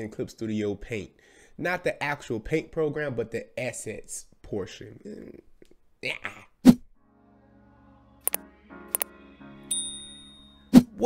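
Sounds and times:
button click: 8.2s - 9.1s
bright bell ding: 9.7s - 10.7s.

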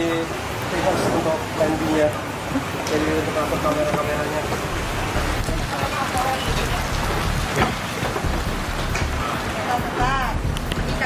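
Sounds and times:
heavy rain on wet deck: 0.0s - 11.0s.

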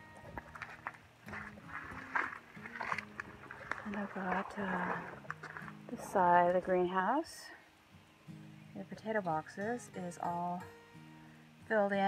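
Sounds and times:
footsteps on loose soil: 0.0s - 6.8s.

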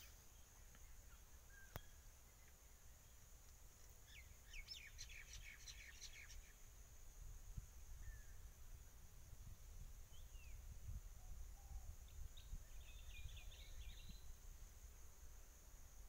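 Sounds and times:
faint click: 1.7s - 2.6s, 3.4s - 4.0s.

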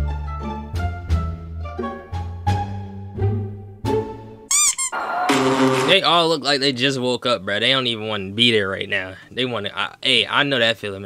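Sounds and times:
high wavering squeak: 4.5s - 5.0s.

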